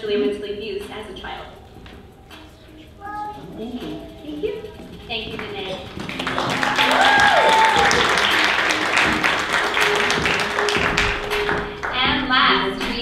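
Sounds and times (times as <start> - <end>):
audience applauding: 5.4 - 12.0
audience cheering: 6.0 - 11.7.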